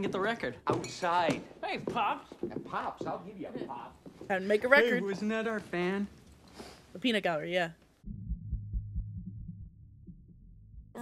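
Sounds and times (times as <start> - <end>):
low hum: 8.0 - 11.0
muffled low thumping: 8.1 - 11.0.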